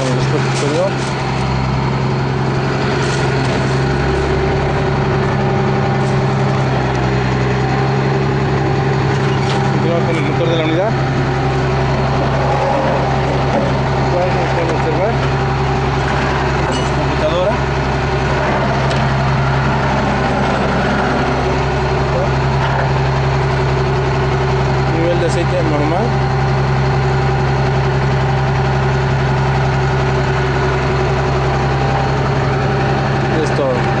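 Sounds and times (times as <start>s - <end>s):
car engine idling: 0.0s - 34.0s.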